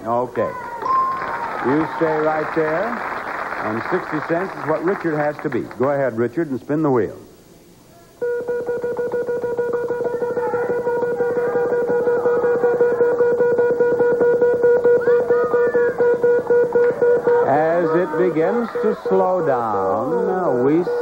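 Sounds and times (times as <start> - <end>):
steady tone: 8.2 - 21.0.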